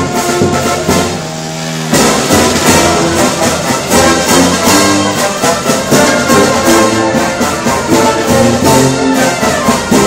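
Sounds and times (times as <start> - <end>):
brass marching band playing: 0.0 - 10.0
drums: 0.0 - 10.0.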